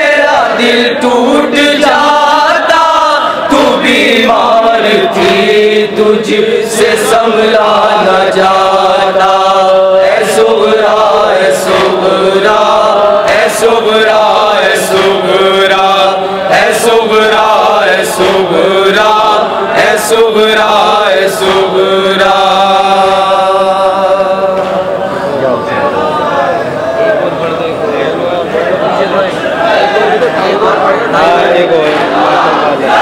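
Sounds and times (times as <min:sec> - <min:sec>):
men chanting a lament: 0:00.0 - 0:33.0.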